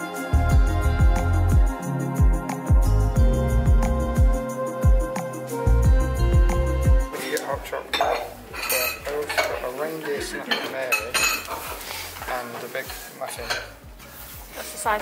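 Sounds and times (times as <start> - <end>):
dishes and cutlery clinking: 7.2 - 15.0.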